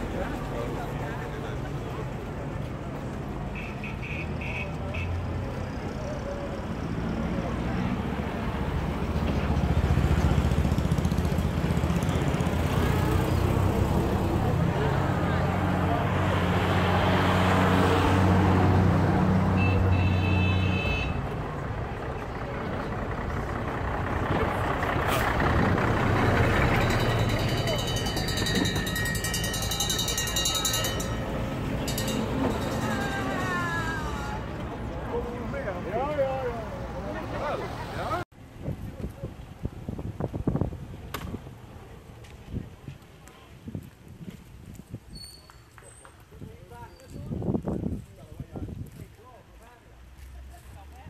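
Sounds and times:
crowd voices: 0.0 - 38.2
military vehicle engines passing: 0.0 - 43.7.

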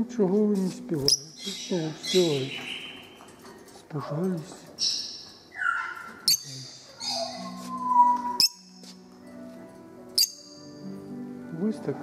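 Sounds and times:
background music: 0.0 - 3.4, 4.4 - 12.0
parrots chirping: 1.0 - 3.5, 4.8 - 8.8, 10.2 - 10.6.

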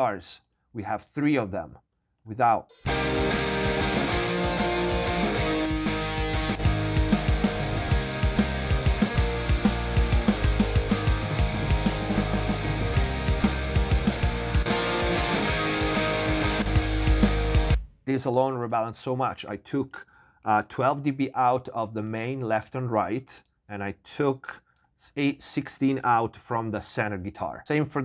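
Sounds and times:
rock music with electric guitars: 2.8 - 17.8.

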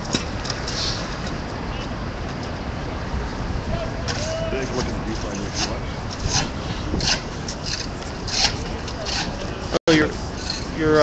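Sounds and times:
street noise: 0.0 - 11.0
voices: 3.6 - 6.0.

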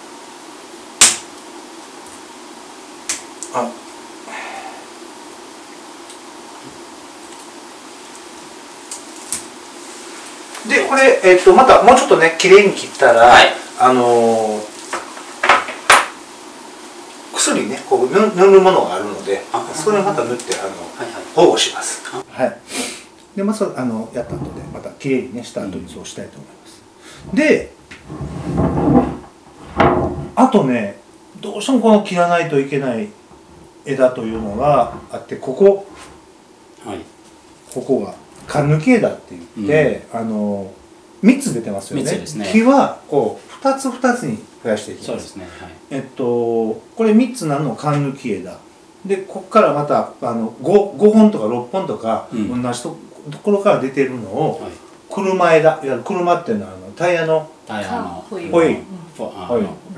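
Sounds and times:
sharp knock: 1.0 - 1.3, 15.4 - 16.2
shears snipping branch: 1.0 - 1.4
rubbing scraping handling noise: 24.1 - 25.0, 27.0 - 30.4, 33.2 - 36.3.

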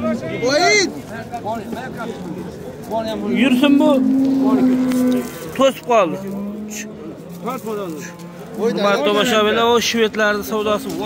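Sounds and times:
men talking: 0.0 - 11.0
cow mooing: 3.2 - 9.4.

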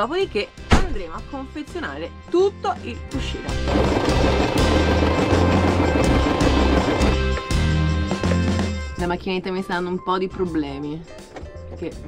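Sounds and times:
background music with bass line: 0.0 - 12.0
electric sewing machine stitching: 3.5 - 7.7.

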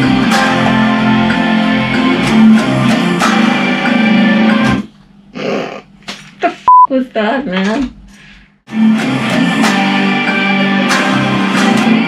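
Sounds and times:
electric guitar riff: 0.0 - 4.9, 8.7 - 12.0
person speaking: 5.4 - 8.3
high beep: 6.7 - 6.9.

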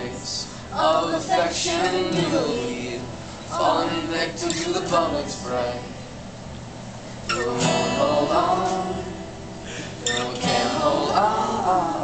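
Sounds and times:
man singing: 0.0 - 6.0, 7.3 - 9.2, 10.0 - 12.0
acoustic guitar strumming: 0.0 - 6.4, 7.1 - 12.0.

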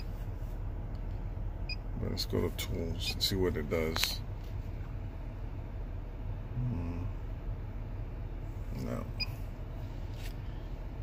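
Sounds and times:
low steady hum in car: 0.0 - 11.0.

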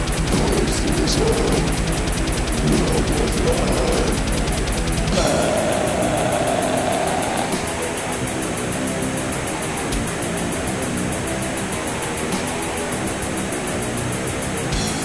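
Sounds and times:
drum hit: 0.0 - 5.7
distorted electric guitars: 0.0 - 15.0.

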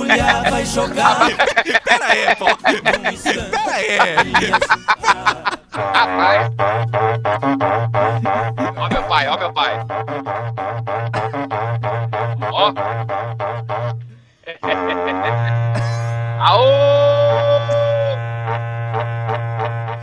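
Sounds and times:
cattle horn droning: 0.0 - 20.0.

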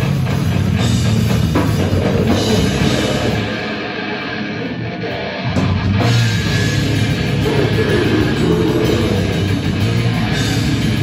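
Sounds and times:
live metal band through pa: 0.0 - 11.0.

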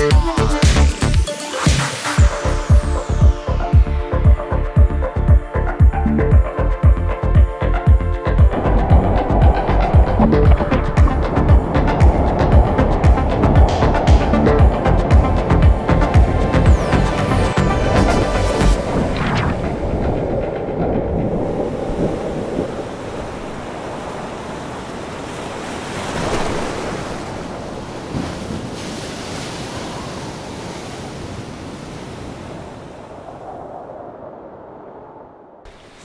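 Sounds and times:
music: 0.0 - 22.6
ocean waves breaking: 8.2 - 36.0.

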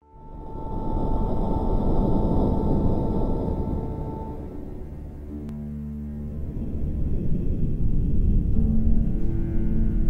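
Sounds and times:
low rumbling swell: 0.0 - 10.0
steady high tone: 0.0 - 10.0.

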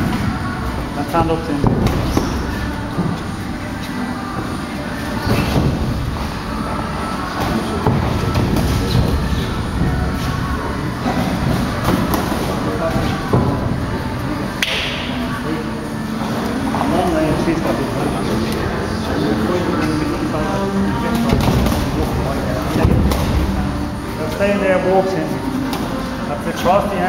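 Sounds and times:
gym room noise: 0.0 - 27.0
indistinct voices: 0.0 - 27.0
boxing gloves thudding: 1.6 - 3.2.

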